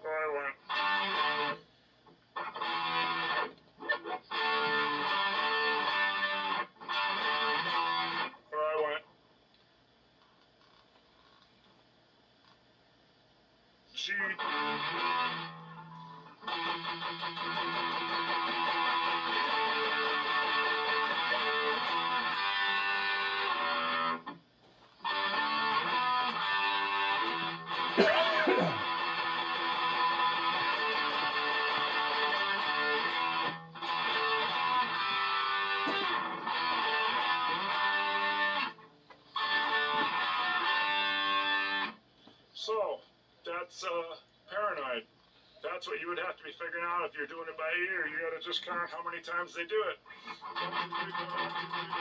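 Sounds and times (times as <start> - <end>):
electric guitar rock riff: 0.0 - 1.6, 2.3 - 8.4, 14.3 - 24.4, 25.0 - 42.0, 50.1 - 52.0.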